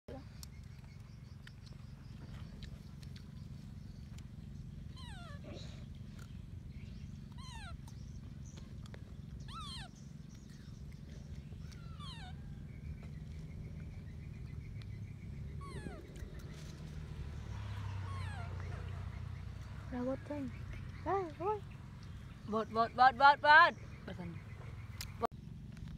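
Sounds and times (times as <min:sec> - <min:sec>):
baby monkey crying: 0:07.3 - 0:07.9, 0:09.4 - 0:10.0, 0:11.6 - 0:12.6, 0:15.5 - 0:16.2, 0:17.8 - 0:19.0.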